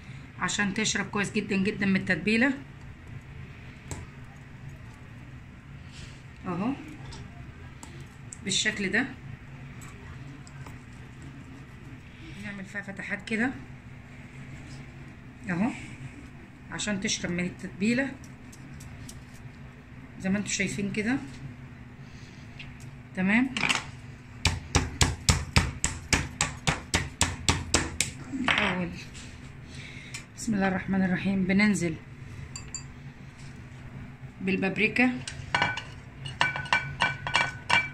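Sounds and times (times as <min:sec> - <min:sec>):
low room hum: 0:00.0 - 0:37.9
meat mallet pounding chicken: 0:24.4 - 0:28.1.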